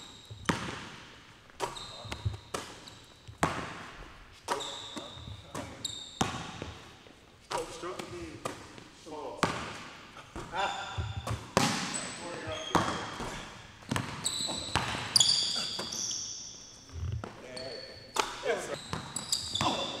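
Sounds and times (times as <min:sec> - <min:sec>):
sneaker squeaks: 0:00.0 - 0:08.8, 0:09.4 - 0:20.0
basketball bouncing on wood floor: 0:00.3 - 0:01.0, 0:01.6 - 0:06.9, 0:09.4 - 0:16.0, 0:18.2 - 0:19.9.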